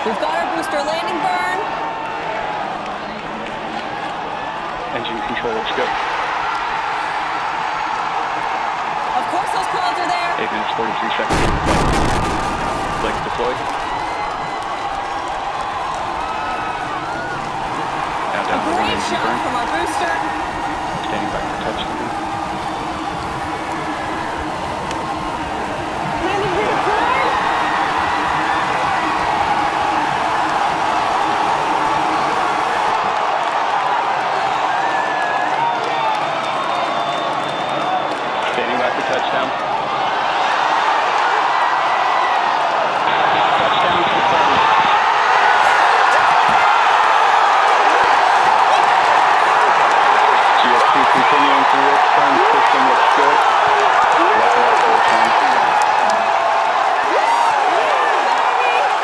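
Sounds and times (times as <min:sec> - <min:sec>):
crowd cheering and shouting: 0:00.0 - 0:59.0.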